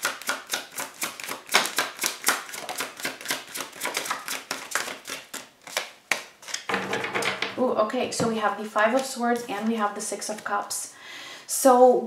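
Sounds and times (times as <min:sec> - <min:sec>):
cards being shuffled: 0:00.1 - 0:06.7, 0:08.8 - 0:10.6.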